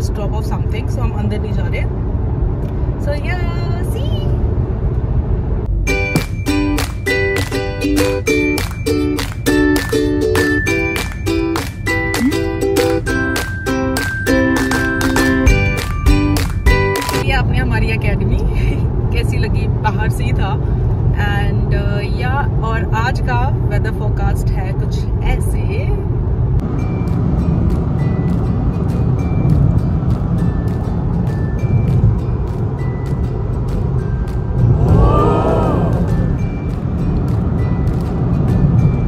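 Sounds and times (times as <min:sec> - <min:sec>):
car road and engine rumble: 0:00.0 - 0:39.0
music playing: 0:05.7 - 0:17.3, 0:26.6 - 0:39.0.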